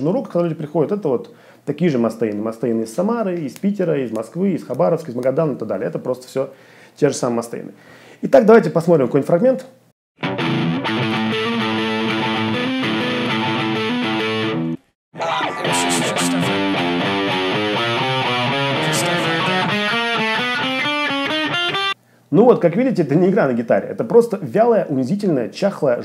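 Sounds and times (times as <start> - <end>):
distorted electric guitar: 10.2 - 22.0
person talking: 15.2 - 16.9, 18.7 - 19.8, 22.3 - 26.0.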